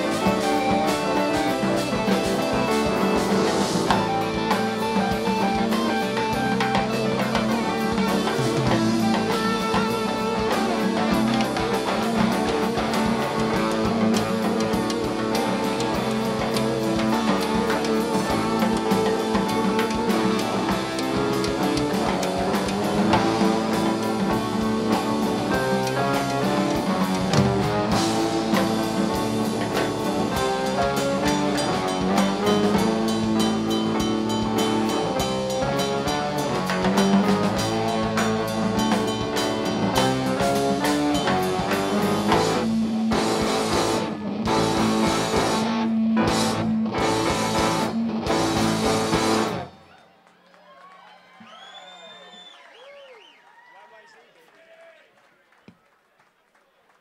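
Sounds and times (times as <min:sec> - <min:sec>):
electric guitar lines: 0:00.0 - 0:49.8
rock band playing: 0:00.0 - 0:50.0.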